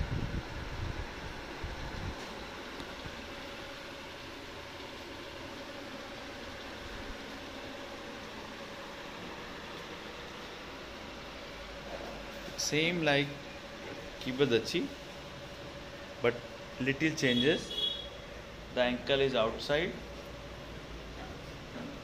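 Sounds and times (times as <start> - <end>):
air conditioner hum and hiss: 0.0 - 22.0.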